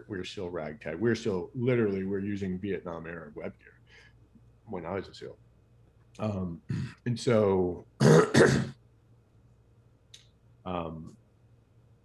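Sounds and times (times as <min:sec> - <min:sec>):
man clearing his throat: 0:08.0 - 0:08.8.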